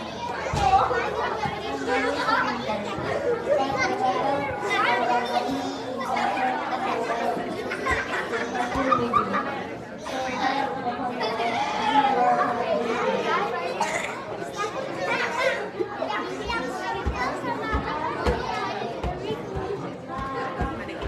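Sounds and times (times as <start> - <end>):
children chattering in a hall: 0.0 - 21.0.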